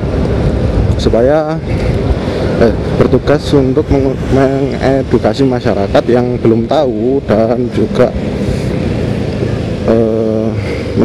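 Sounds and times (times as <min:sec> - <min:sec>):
motorcycle engine hum: 0:00.0 - 0:11.0
wind and road noise: 0:00.0 - 0:11.0.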